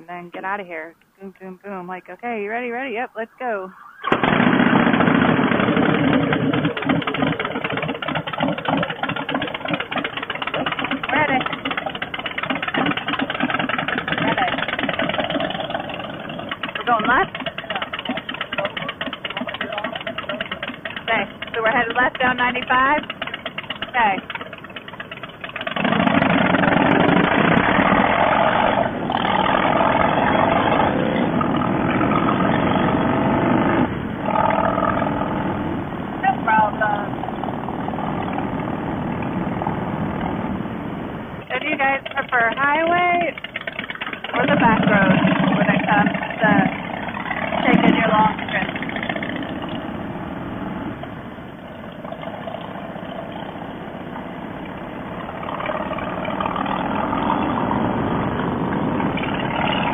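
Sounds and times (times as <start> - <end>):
road noise rushing: 0.0 - 59.9
motorcycle engine running: 4.1 - 59.9.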